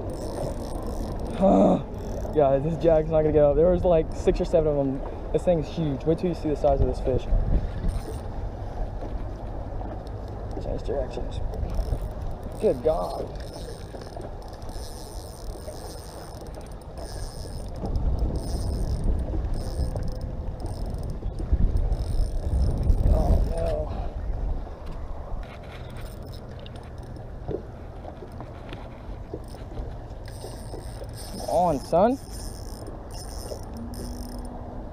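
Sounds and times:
spinning reel mechanism running: 0:00.0 - 0:01.4, 0:02.0 - 0:02.4, 0:07.8 - 0:08.2, 0:11.6 - 0:23.6, 0:30.2 - 0:34.6.

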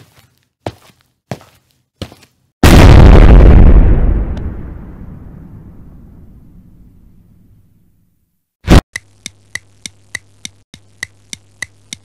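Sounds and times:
explosion blast: 0:02.6 - 0:07.0.

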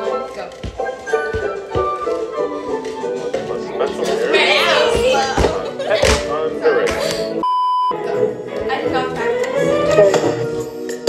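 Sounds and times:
pop music: 0:00.0 - 0:11.0
electronic censor bleep: 0:07.4 - 0:08.0.

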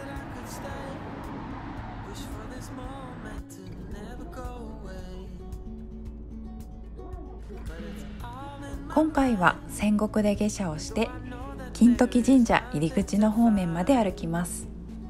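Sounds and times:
background music with melody: 0:00.0 - 0:15.0
moving bus rumble: 0:00.0 - 0:15.0
street noise: 0:00.0 - 0:15.0.

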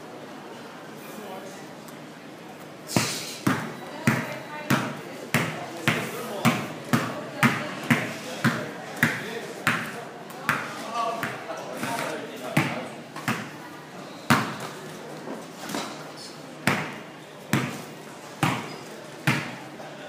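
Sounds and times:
basketball bouncing on indoor court: 0:03.0 - 0:13.6, 0:14.3 - 0:14.6, 0:16.6 - 0:17.8, 0:18.4 - 0:19.6.

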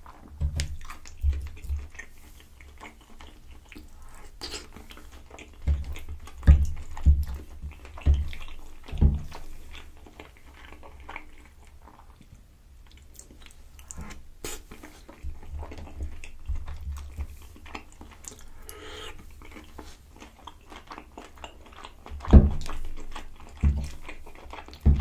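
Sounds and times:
wet chewing mouth sounds: 0:00.0 - 0:25.0.

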